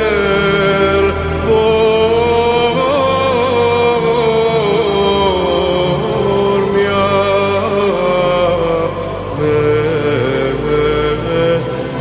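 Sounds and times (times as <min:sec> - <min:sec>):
low drone: 0:00.0 - 0:12.0
slow music with held notes: 0:00.0 - 0:12.0.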